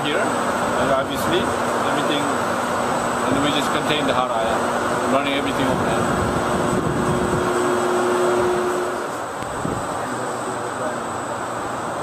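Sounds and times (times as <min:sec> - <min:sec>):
cooling fans rushing air: 0:00.0 - 0:12.0
steady hum: 0:00.0 - 0:12.0.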